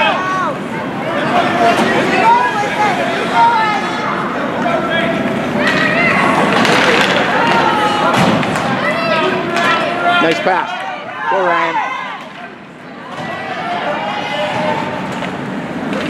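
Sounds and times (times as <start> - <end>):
spectators and players calling out: 0.0 - 16.0.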